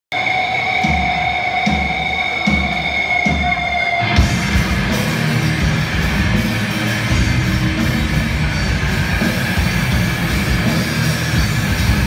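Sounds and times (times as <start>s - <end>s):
heavy metal band playing: 0.1s - 12.0s.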